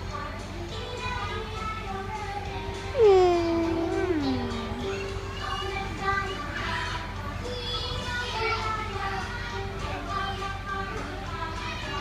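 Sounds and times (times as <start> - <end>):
music playing in a room: 0.0 - 12.0
children's voices: 3.0 - 6.8.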